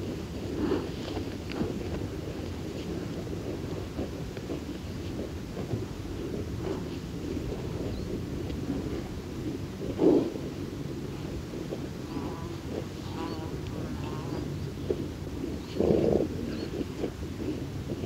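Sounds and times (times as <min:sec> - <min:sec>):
low rumble of wind: 0:00.0 - 0:18.0.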